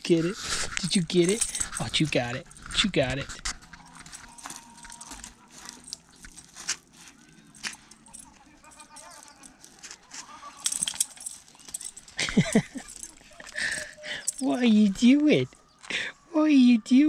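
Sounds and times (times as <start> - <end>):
leash and tag jingles: 0.0 - 15.8
dog pawing at gravel: 0.2 - 14.9.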